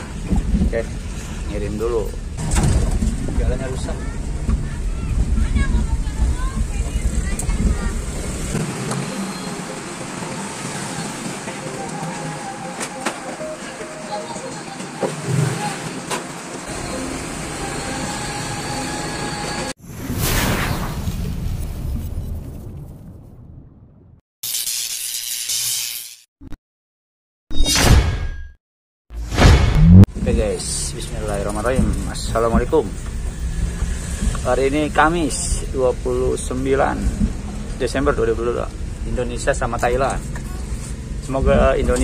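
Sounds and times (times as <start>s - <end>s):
outdoor street noise: 0.0s - 23.7s, 29.1s - 42.0s.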